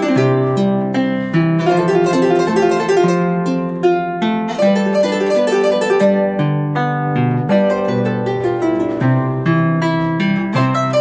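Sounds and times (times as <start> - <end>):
harp played solo: 0.0 - 11.0.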